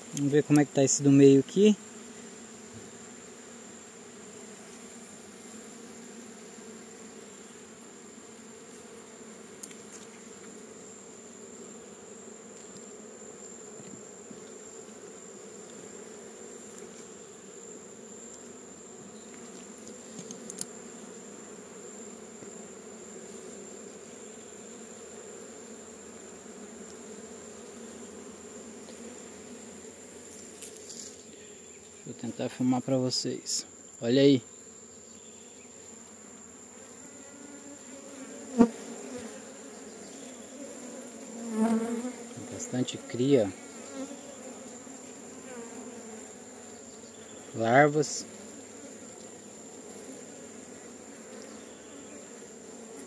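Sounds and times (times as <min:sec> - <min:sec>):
honeybees buzzing: 0:00.0 - 0:53.0
faint clicks: 0:19.3 - 0:20.7.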